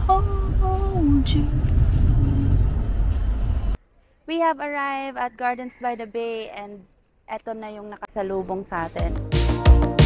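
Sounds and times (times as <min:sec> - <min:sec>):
road rumble inside moving car: 0:00.0 - 0:03.8.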